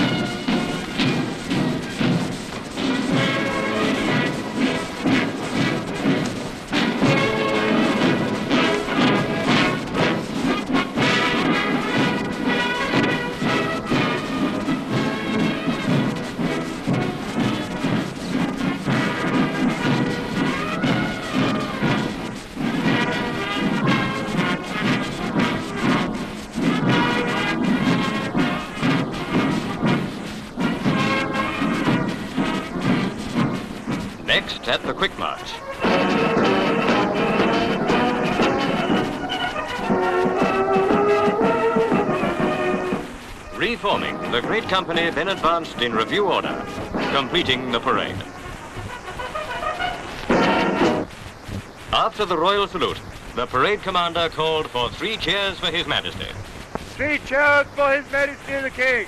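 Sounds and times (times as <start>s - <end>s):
military band music: 0.0s - 51.2s.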